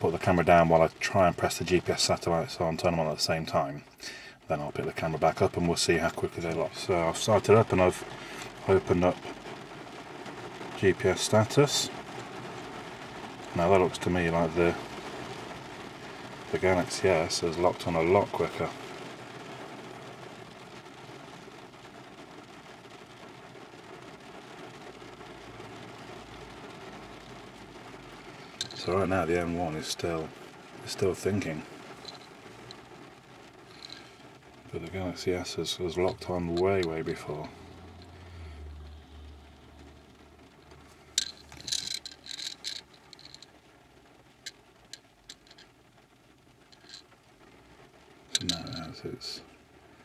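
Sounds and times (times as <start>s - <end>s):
rain on car roof: 0.0s - 50.0s
light clicks and taps: 28.6s - 29.1s, 41.2s - 43.5s.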